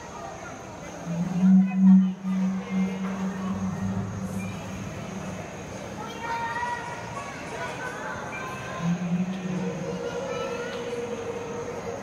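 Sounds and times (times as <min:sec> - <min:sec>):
recorded dinosaur call: 0:00.9 - 0:05.8, 0:08.6 - 0:12.0.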